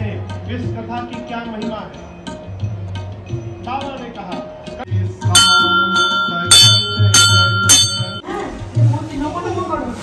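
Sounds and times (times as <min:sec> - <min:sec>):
temple bell ringing: 0:05.2 - 0:08.2.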